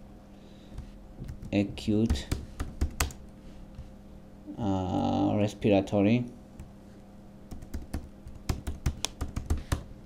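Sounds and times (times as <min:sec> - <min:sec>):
computer keyboard typing: 0:01.2 - 0:03.2, 0:07.5 - 0:09.9.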